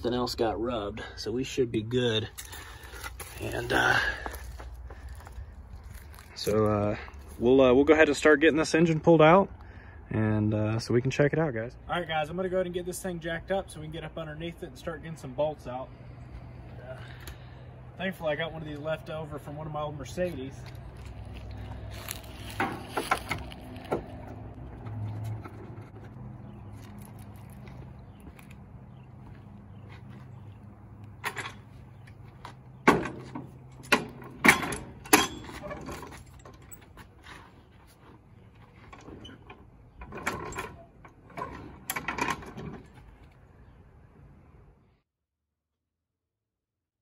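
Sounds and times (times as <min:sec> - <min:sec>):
sharp metal knocks: 0:32.8 - 0:35.6.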